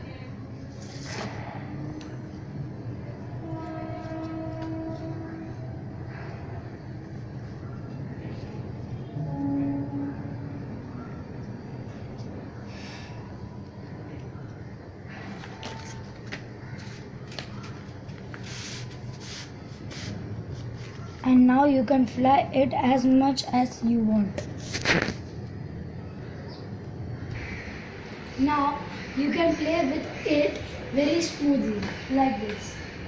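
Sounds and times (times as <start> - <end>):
horn-like tones: 3.2 - 6.0, 9.0 - 11.0.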